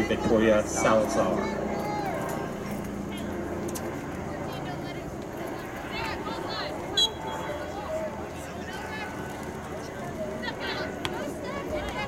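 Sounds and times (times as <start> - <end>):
distant shouts and calls: 4.3 - 12.0.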